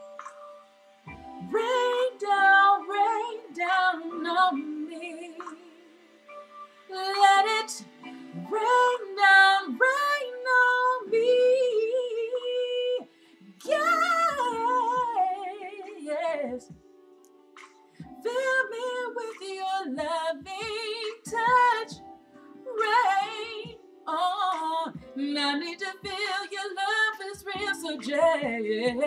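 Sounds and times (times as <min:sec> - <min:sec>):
woman singing: 0:01.4 - 0:06.0, 0:06.9 - 0:16.7, 0:18.1 - 0:22.0, 0:22.6 - 0:29.0.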